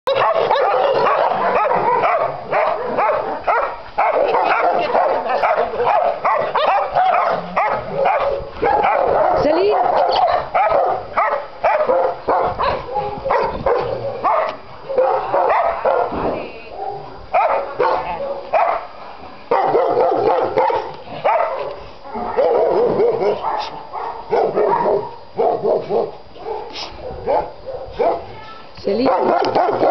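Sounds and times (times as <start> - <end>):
dogs barking: 0.1 - 16.2, 16.8 - 29.9.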